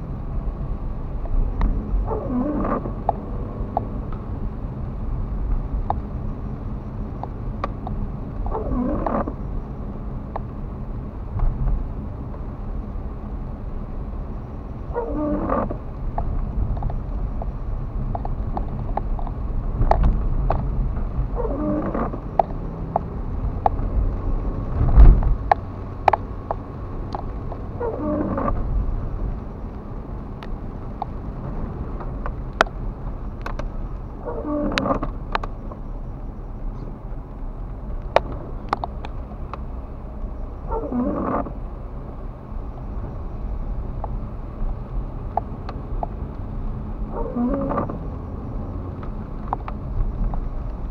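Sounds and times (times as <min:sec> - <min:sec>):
car engine and wet road hum: 0:00.0 - 0:50.9
raindrops ticking on car: 0:00.0 - 0:50.9
windscreen wipers sweeping: 0:00.0 - 0:50.9.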